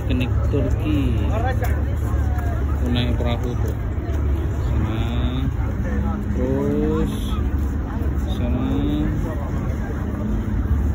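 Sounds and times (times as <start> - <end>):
passersby's voices: 0.0 - 10.9
road traffic rumble: 0.0 - 10.9.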